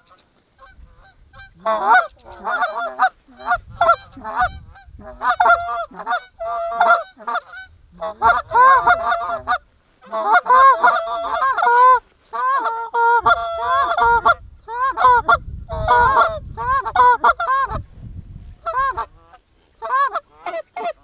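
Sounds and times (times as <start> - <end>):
geese honking and clucking: 0.0 - 21.0.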